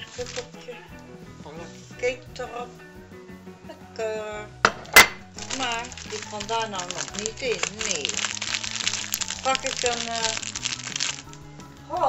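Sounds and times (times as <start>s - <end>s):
plastic packaging crinkling: 0.0s - 0.6s, 4.7s - 11.6s
background music: 0.0s - 12.0s.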